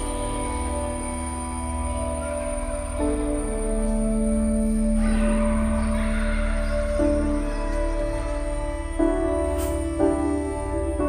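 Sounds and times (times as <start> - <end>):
calm instrumental music: 0.0 - 11.0.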